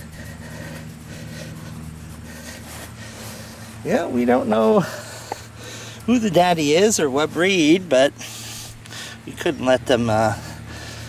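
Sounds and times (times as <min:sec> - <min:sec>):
low mechanical motor hum: 0:00.0 - 0:11.0.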